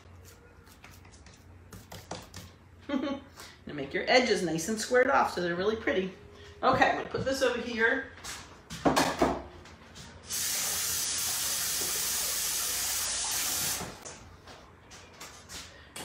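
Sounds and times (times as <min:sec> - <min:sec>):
faucet running into a sink: 0:10.3 - 0:14.0.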